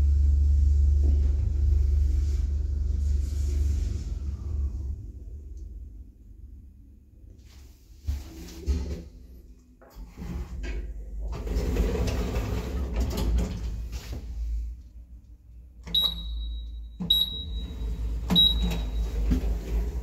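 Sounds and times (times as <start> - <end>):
elevator car low hum: 0.0 - 7.6, 10.8 - 20.0.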